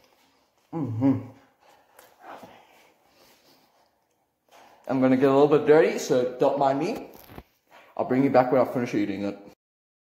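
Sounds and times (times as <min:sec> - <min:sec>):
person eating mouth sounds: 0:00.0 - 0:02.8
breathy vocal noise: 0:00.6 - 0:03.8.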